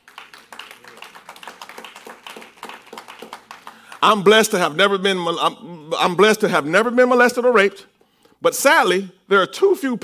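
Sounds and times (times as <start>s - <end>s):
scattered clapping: 0.0s - 4.6s.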